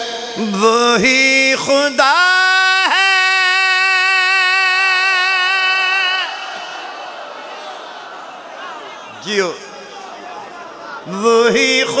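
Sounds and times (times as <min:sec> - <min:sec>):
man singing long high note: 0:00.0 - 0:06.5, 0:11.0 - 0:12.0.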